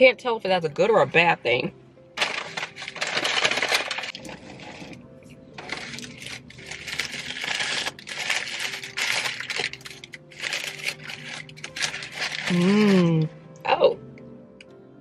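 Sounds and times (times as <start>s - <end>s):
paper packaging rustling: 2.2s - 13.2s.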